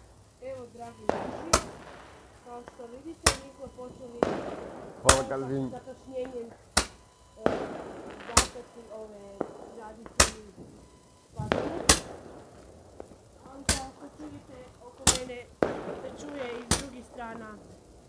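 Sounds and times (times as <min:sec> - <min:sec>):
fireworks bangs: 0:00.0 - 0:18.0
voices: 0:00.0 - 0:18.0.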